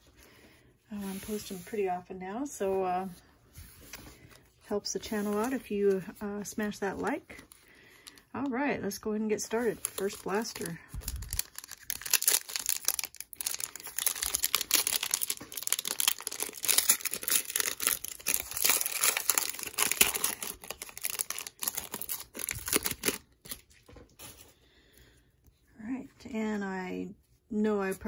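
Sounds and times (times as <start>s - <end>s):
foil wrapper torn and crinkled: 9.6s - 23.9s.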